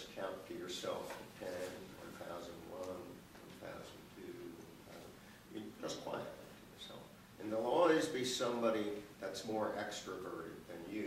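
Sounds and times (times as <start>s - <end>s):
faint speech in a room: 0.0s - 11.0s.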